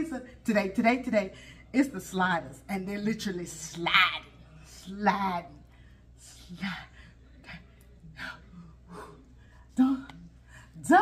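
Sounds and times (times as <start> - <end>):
woman speaking softly: 0.0 - 11.0.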